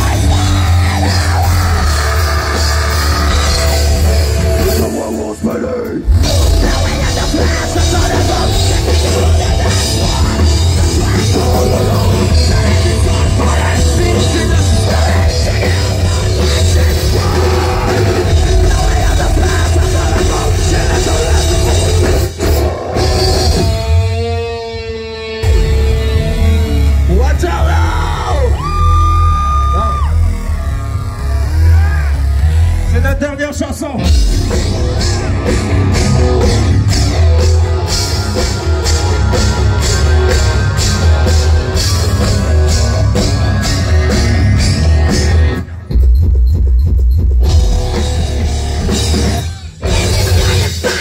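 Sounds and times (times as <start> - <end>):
drum kit: 0.0 - 33.2, 34.0 - 51.0
electric guitar: 0.0 - 33.3, 34.0 - 45.9, 47.4 - 51.0
heavy rock band playing: 0.0 - 51.0
vocalist yelling: 27.1 - 34.0.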